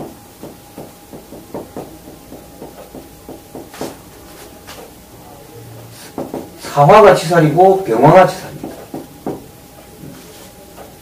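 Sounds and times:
marker writing on whiteboard: 0.4 - 4.9, 5.8 - 6.5, 8.5 - 9.5.

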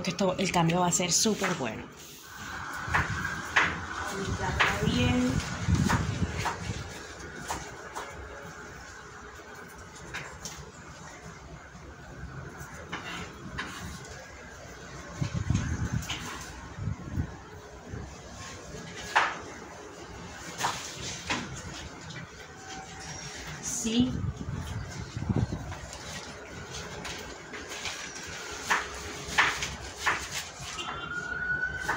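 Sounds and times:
leaves brushing: 24.6 - 31.4.

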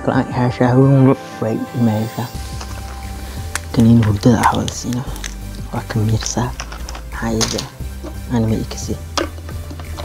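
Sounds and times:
man speaking: 0.0 - 2.4, 3.7 - 9.0
low background music: 0.0 - 10.0
tablets pressed from blister pack: 2.4 - 8.2.

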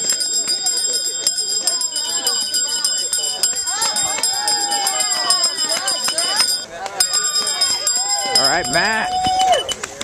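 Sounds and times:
thin steady high tone: 0.0 - 9.8
spectators calling out: 0.0 - 10.0.

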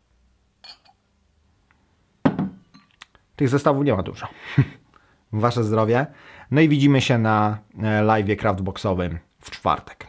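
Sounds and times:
glass bottle clinking on table: 0.6 - 1.0, 2.3 - 3.0.

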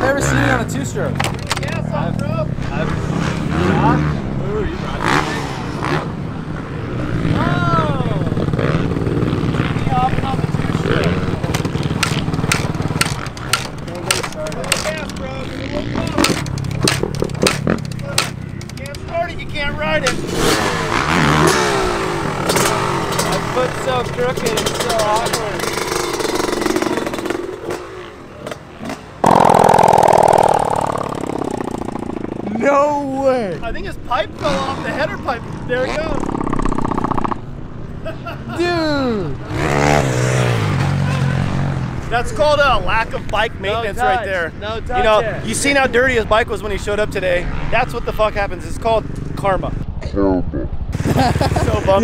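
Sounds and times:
loud dirt bike engine: 0.0 - 1.1, 2.1 - 18.4, 19.9 - 33.4, 34.2 - 37.7, 39.2 - 42.6, 50.9 - 52.0
motorcycle engine running: 29.2 - 32.6
people talking and laughing: 37.8 - 39.5, 50.0 - 52.0.

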